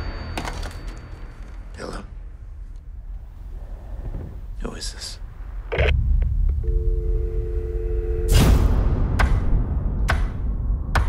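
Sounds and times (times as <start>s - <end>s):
loud low rumbling drone: 5.2s - 11.0s
two-note dial tone: 6.6s - 8.4s.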